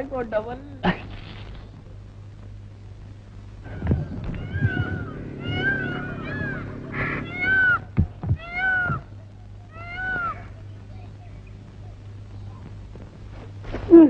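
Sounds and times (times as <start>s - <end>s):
low steady hum: 0.0s - 14.0s
animal cries: 3.7s - 10.7s
dull thuds: 7.9s - 9.1s.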